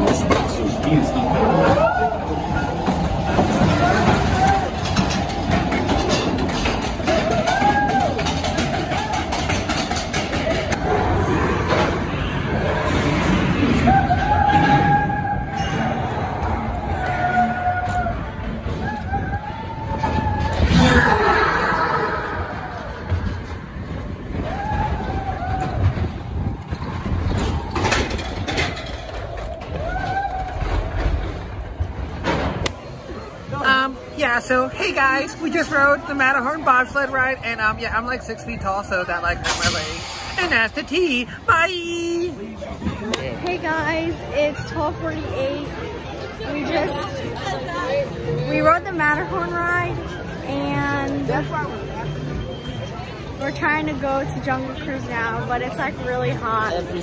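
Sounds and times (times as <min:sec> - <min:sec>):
coaster car rumbling and clattering: 0:00.0 - 0:51.6
riders whooping: 0:24.3 - 0:28.0, 0:29.2 - 0:31.0.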